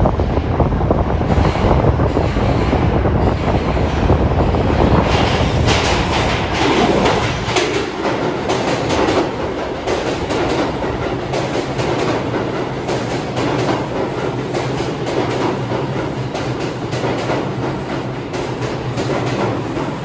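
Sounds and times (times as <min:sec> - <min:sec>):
subway train rumble: 0:00.0 - 0:20.0
train wheels clicking over rail joints: 0:01.2 - 0:20.0.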